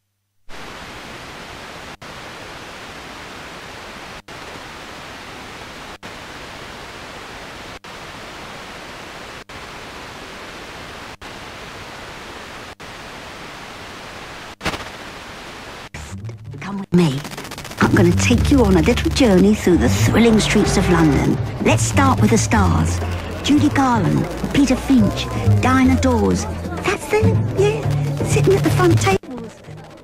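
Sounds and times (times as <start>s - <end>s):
radio static hiss: 0.0s - 16.2s, 17.0s - 30.0s.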